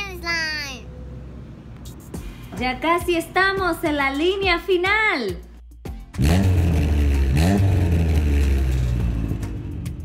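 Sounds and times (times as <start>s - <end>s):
large engine revving: 6.2s - 10.0s.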